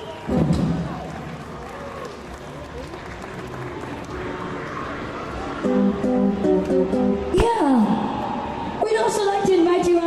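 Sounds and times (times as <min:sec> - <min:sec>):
audience applauding: 0:00.0 - 0:05.0
crowd voices: 0:00.0 - 0:10.0.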